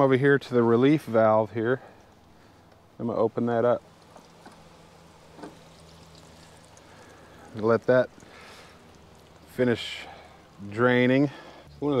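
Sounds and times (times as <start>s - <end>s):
water trickling from valve: 3.8s - 11.5s.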